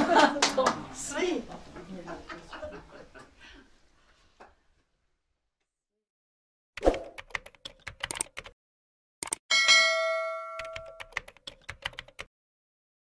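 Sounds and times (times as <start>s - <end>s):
keyboard typing clicks: 7.2s - 8.6s, 10.6s - 12.3s
notification bell ding: 9.5s - 11.1s.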